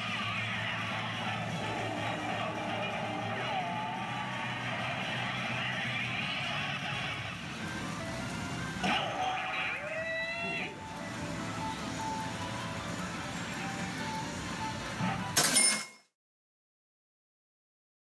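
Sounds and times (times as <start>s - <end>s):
pachinko electronic music: 0.0s - 15.7s.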